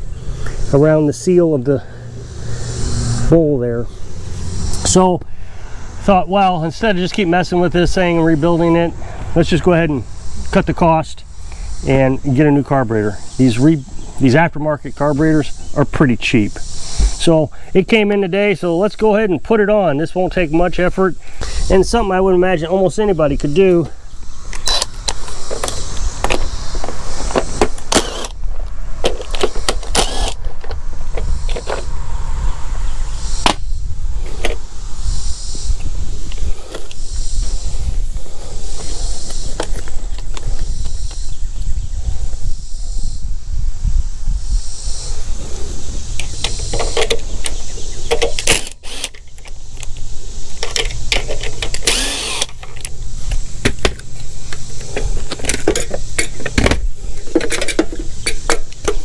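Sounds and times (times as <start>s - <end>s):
cordless power driver whirring: 27.2s - 28.4s, 29.2s - 31.9s, 48.4s - 50.0s, 51.5s - 53.0s.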